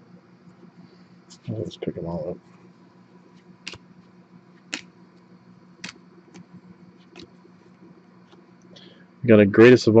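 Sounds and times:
faint steady hum: 0.0s - 10.0s
trading cards clicking and tapping: 3.6s - 3.8s, 5.8s - 7.3s.

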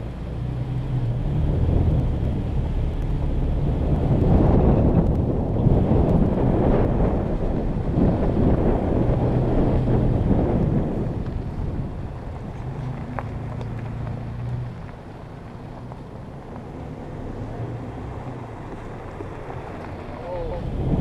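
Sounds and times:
low engine hum: 0.0s - 21.0s
tyre and wind rumble: 0.0s - 21.0s.

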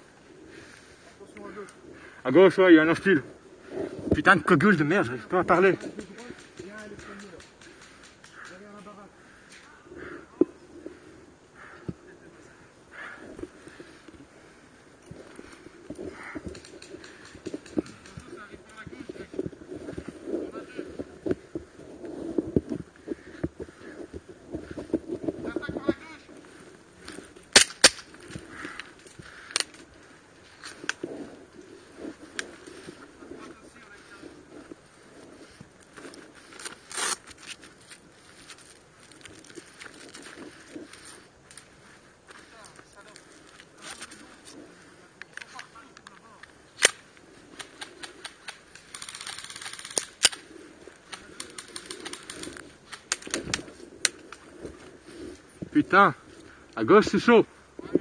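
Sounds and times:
hissing quick clicks: 5.5s - 9.8s, 45.2s - 54.5s.

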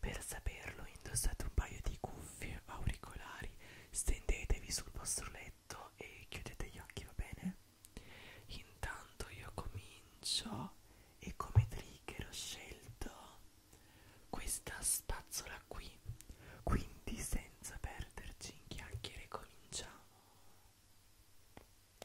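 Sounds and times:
man whispering: 0.0s - 7.6s, 8.5s - 13.4s, 14.3s - 20.2s.

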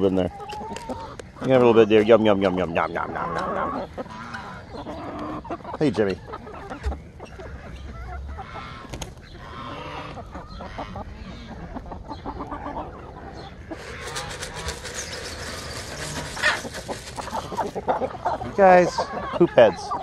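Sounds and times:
chickens clucking: 0.0s - 20.0s.

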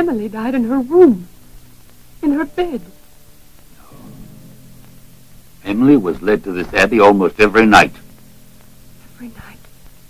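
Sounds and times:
old film soundtrack hum and hiss: 0.0s - 10.0s.

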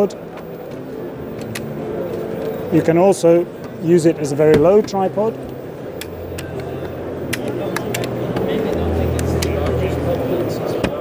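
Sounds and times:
background chatter: 0.0s - 11.0s
tripod hinges clicking: 0.3s - 2.6s, 4.4s - 9.8s.

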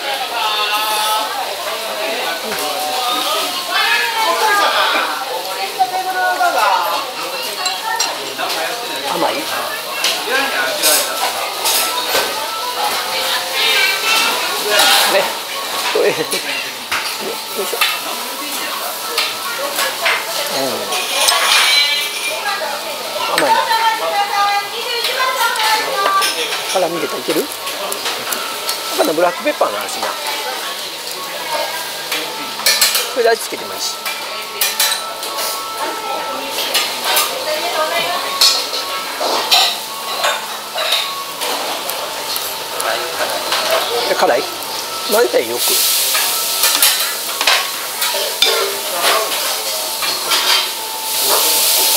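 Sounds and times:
faint background voices: 0.0s - 51.9s
frying sizzle: 0.0s - 51.9s
tableware clinks: 20.9s - 22.4s, 38.3s - 44.3s, 46.1s - 51.6s
steady hiss: 50.9s - 51.9s.

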